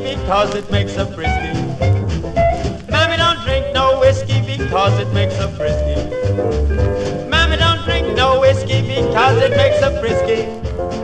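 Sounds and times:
calypso band playing: 0.0 - 11.0
sliding lead melody: 0.0 - 11.0
pulsing bass: 0.1 - 11.0.

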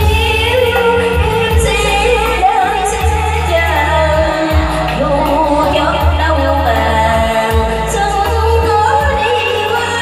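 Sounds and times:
accompaniment with steady bass: 0.0 - 10.0
woman singing through a microphone: 0.0 - 10.0.

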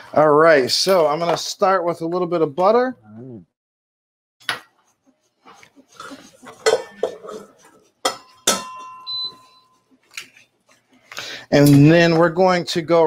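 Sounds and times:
kitchenware clinking and clattering: 4.4 - 12.4
pan ringing after knock: 8.1 - 9.3
short high beep: 9.0 - 9.8.

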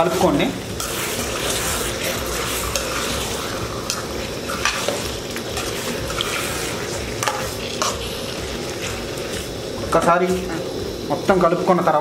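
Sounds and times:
fish sizzling in a steel pan: 0.0 - 12.0.

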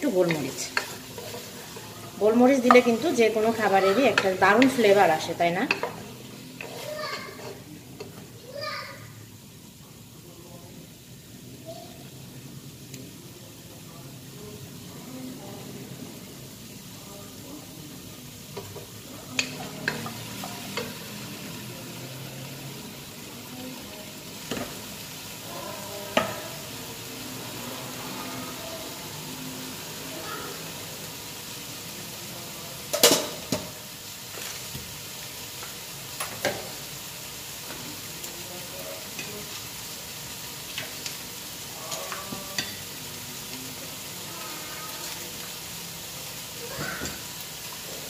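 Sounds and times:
food sizzling in a pot: 0.0 - 48.0.

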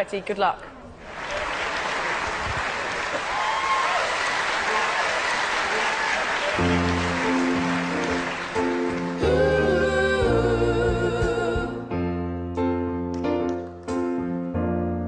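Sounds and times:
audience applauding and cheering: 1.0 - 10.2
backing track chords: 6.6 - 15.0.

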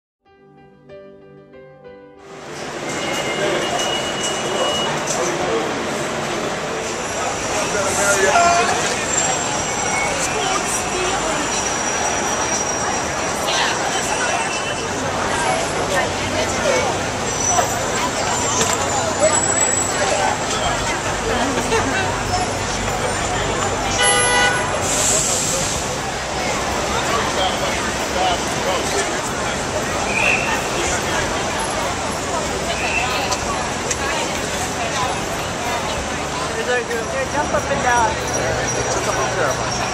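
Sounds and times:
busy street noise: 2.2 - 39.9
crowd noise: 2.2 - 39.9
station and train noise: 2.2 - 39.9
people's voices: 2.5 - 39.9
vehicle horn honk: 23.9 - 25.0.

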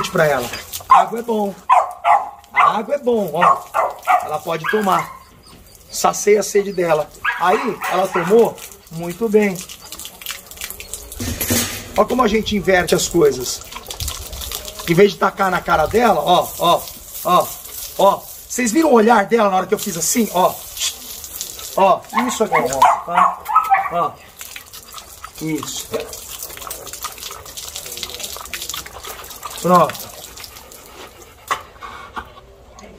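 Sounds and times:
hose water splashing on concrete: 0.0 - 31.8
dog lapping water: 0.0 - 32.5.

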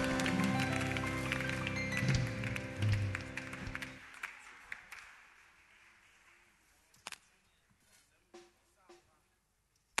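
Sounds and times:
hand claps: 0.0 - 7.2.

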